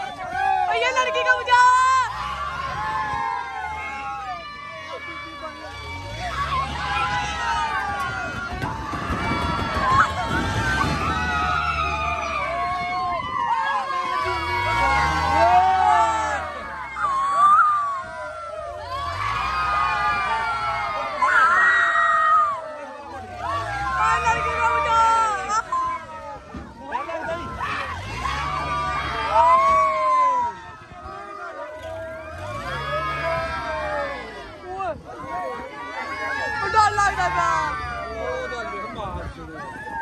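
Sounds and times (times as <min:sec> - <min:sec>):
crowd shouting and screaming: 0:00.0 - 0:40.0.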